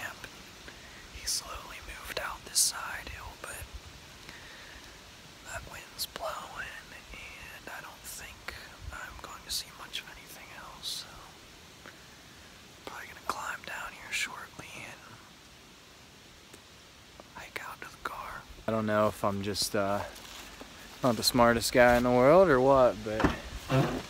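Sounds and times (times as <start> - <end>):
man whispering: 0.0 - 3.8, 5.4 - 11.5, 12.8 - 15.4, 16.5 - 24.0.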